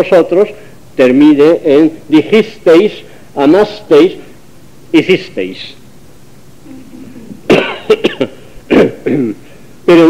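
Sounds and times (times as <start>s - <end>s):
person coughing: 6.7s - 9.4s.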